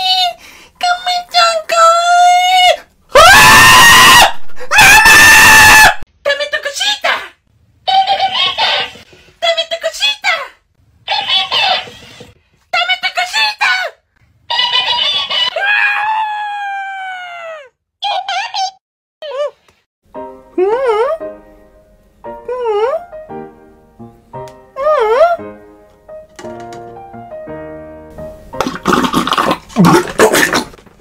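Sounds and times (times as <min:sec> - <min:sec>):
loud high-pitched screams: 0:03.2 - 0:06.0, 0:15.4 - 0:17.6
squeaky sped-up toy voice: 0:07.9 - 0:09.0, 0:11.0 - 0:12.2, 0:14.5 - 0:15.6.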